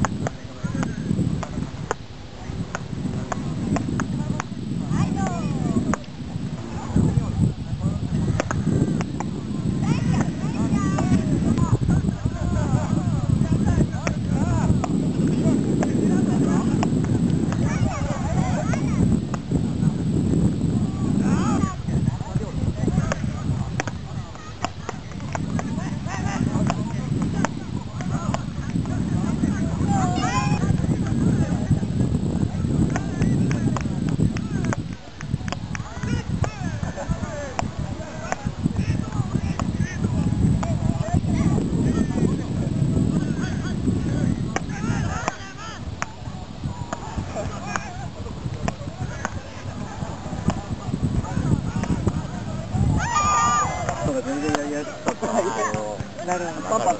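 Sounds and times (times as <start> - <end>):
steady low rumble: 0.0 - 56.9
paddles striking ball: 8.4 - 9.3, 53.8 - 56.3.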